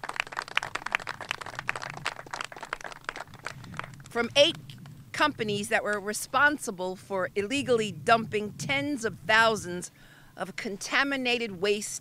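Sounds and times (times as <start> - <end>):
people clapping: 0.0 - 4.9.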